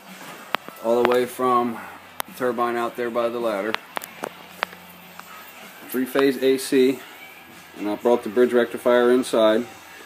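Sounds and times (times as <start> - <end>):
man's voice: 0.8 - 3.8, 5.8 - 7.1, 7.8 - 9.8.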